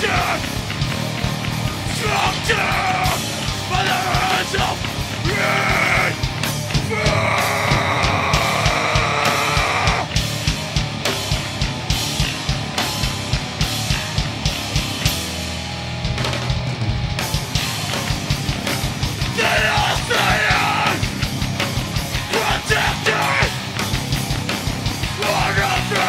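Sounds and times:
shouted vocals: 0:00.0 - 0:00.6, 0:01.8 - 0:10.2, 0:19.2 - 0:21.2, 0:22.2 - 0:23.7, 0:25.1 - 0:26.0
punk band playing: 0:00.0 - 0:26.0.

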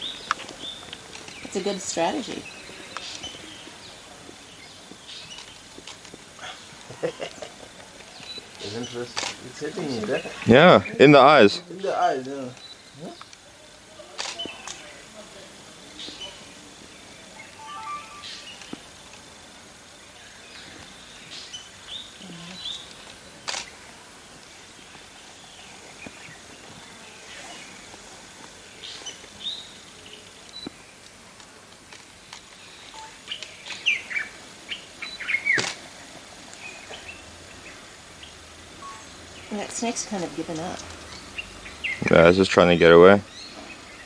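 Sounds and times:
birds chirping: 0:00.0 - 0:19.2, 0:19.8 - 0:31.3, 0:32.1 - 0:44.0
sharp clicks: 0:14.2 - 0:14.8
faint steady high tones: 0:17.2 - 0:19.0, 0:32.8 - 0:33.3, 0:38.7 - 0:40.5.

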